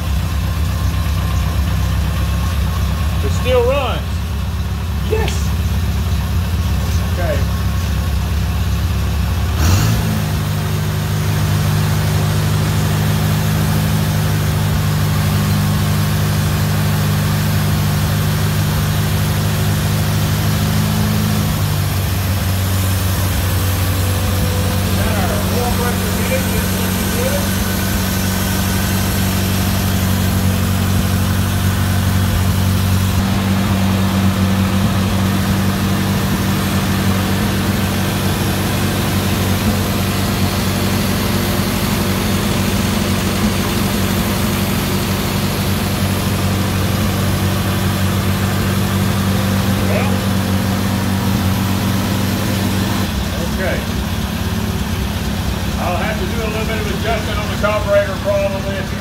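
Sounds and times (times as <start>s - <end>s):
tractor engine running: 0.0s - 59.0s.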